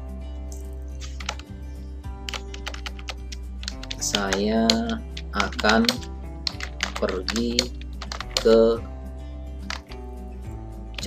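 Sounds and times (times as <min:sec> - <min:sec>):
background music: 0:00.0 - 0:11.0
computer keyboard typing: 0:01.0 - 0:01.5, 0:02.3 - 0:08.8, 0:09.6 - 0:10.0.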